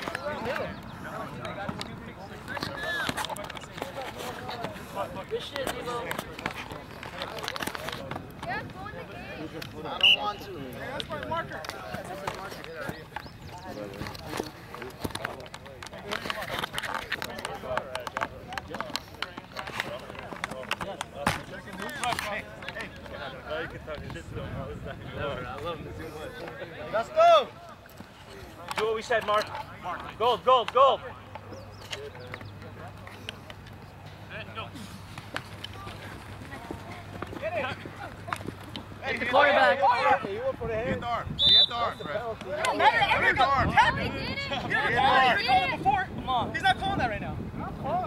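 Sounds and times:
distant voices talking: 0.0 - 48.0.

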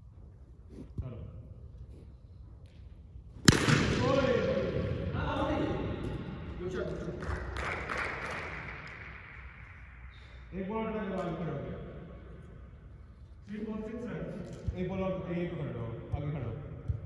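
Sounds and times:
cricket bat striking ball: 3.4 - 5.1.

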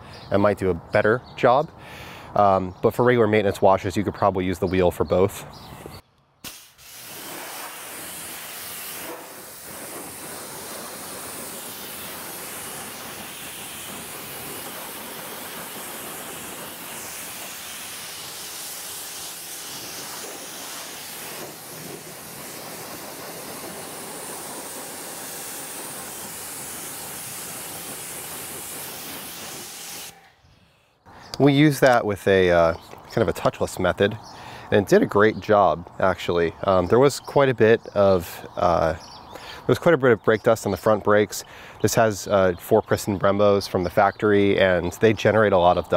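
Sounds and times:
pressure washer spraying: 6.4 - 30.3.

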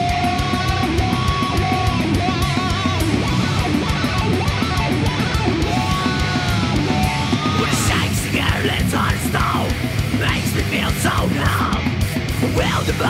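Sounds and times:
distorted electric guitars: 0.0 - 13.0
drums: 0.0 - 13.0.

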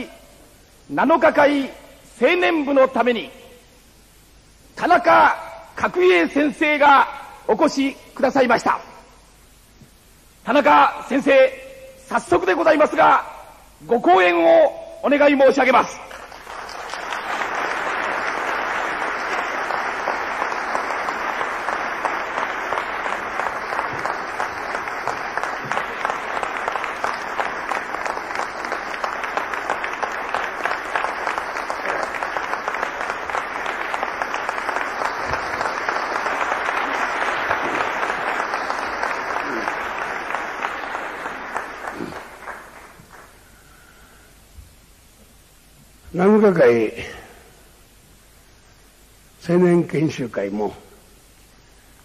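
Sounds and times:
audience applauding: 16.1 - 43.9.

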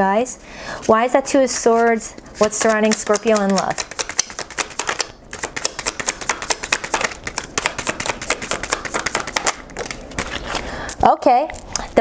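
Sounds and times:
cards being shuffled: 1.8 - 10.7.

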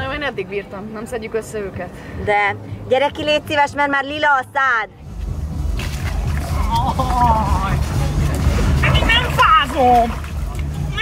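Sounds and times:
low rumble: 4.9 - 11.0.

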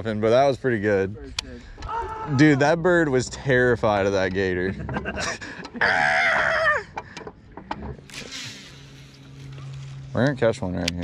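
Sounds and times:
man laughing: 4.6 - 7.0
short hiss: 8.1 - 9.5.

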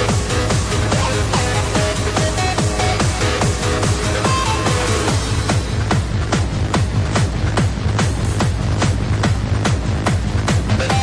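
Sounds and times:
hardstyle kick drum: 0.0 - 11.0
steady bass: 0.0 - 11.0.

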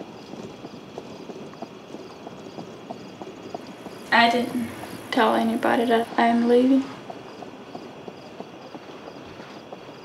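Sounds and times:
horse hooves clip-clopping: 0.0 - 10.0.

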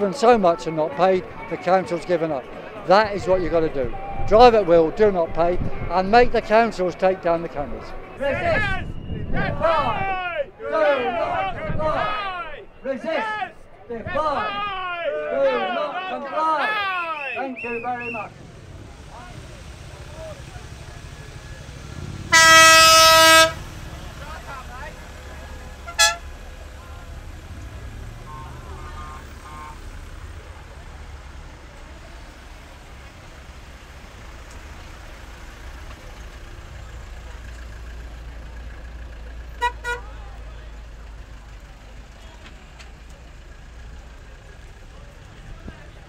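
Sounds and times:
vehicle horns honking: 17.1 - 26.8, 27.5 - 30.4, 39.5 - 40.2.

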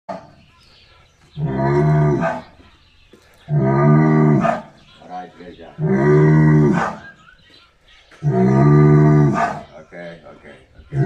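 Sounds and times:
bull bellowing: 1.4 - 2.6, 3.5 - 4.8, 5.7 - 7.2, 8.2 - 9.8.

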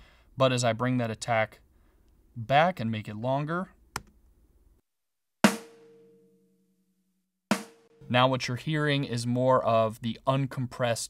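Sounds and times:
snare drum hits: 5.5 - 6.0, 7.5 - 8.0.

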